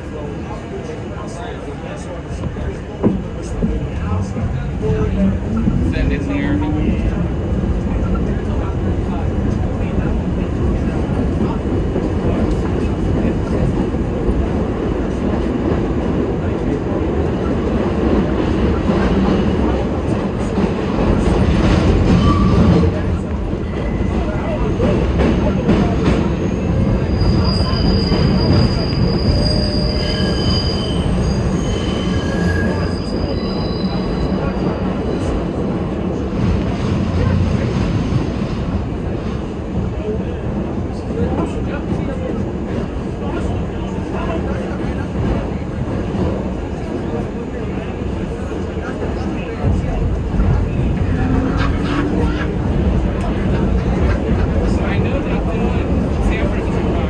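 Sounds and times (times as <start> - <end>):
wheels rumbling on rail: 0.0 - 57.0
wheels squealing: 26.4 - 35.3.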